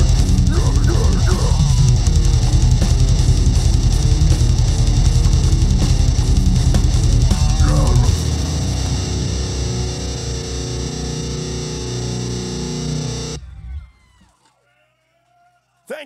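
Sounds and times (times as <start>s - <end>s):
distorted guitar and bass chord ringing: 0.0s - 13.7s.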